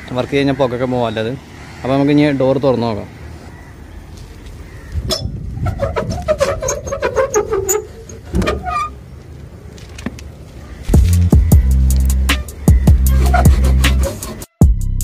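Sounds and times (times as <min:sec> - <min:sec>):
metal bolt scraping and squeaking: 0:05.0 - 0:09.1, 0:12.4 - 0:14.5
music with heavy bass beat: 0:10.9 - 0:15.0.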